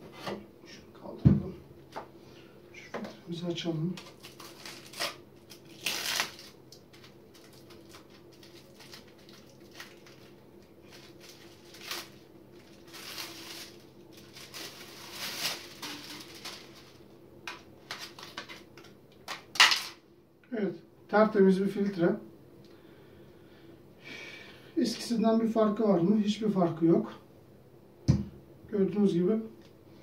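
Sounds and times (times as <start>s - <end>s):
faint steady hum: 0.0s - 30.0s
plastic wrapping crinkling and tearing: 4.0s - 20.0s.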